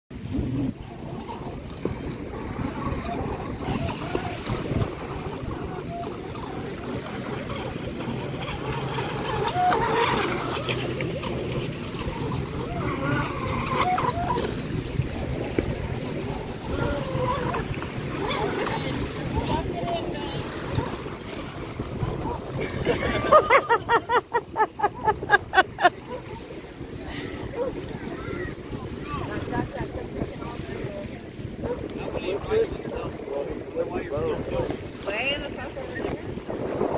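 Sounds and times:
small waves lapping: 0.1s - 36.9s
distant voices: 0.4s - 36.9s
model boat motor: 0.7s - 36.9s.

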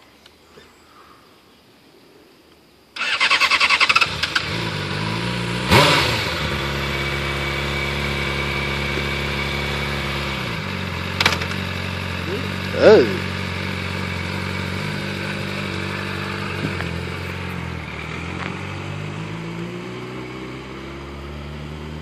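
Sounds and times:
electric starter cranking: 3.0s - 4.6s
motorcycle engine revving and idling: 3.0s - 22.0s.

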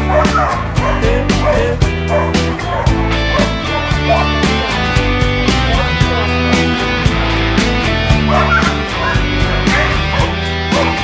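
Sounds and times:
dog barking and yipping: 0.0s - 4.5s, 8.2s - 11.0s
music with steady beat: 0.0s - 11.0s.

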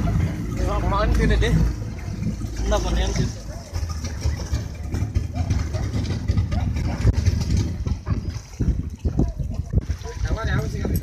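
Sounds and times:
heavy low rumble: 0.0s - 11.0s
distant voices of swimmers: 1.5s - 10.3s.

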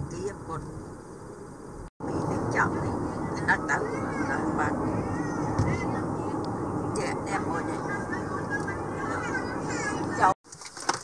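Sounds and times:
car road and engine noise: 0.0s - 11.0s
high sliding voice sounds: 2.2s - 10.4s.

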